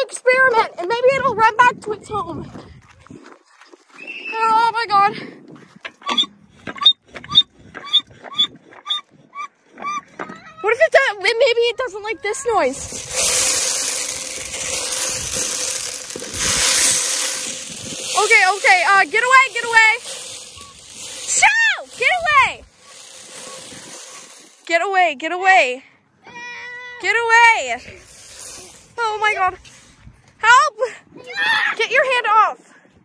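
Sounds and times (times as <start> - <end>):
child making squeaky noises: 7.8 - 10.9
child wailing: 9.8 - 10.7, 31.2 - 31.8.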